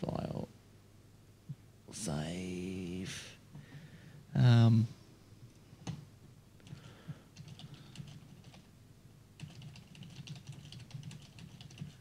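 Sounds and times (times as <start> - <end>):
typing on computer keyboard: 7.4 - 8.7, 9.4 - 12.0.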